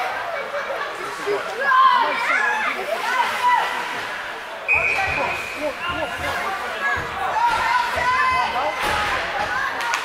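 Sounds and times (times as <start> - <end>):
crowd and children chattering: 0.0 - 10.0.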